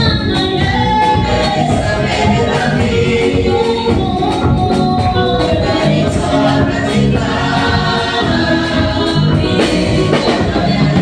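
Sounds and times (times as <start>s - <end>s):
choir singing praise song: 0.0s - 11.0s
electric bass guitar: 0.0s - 11.0s.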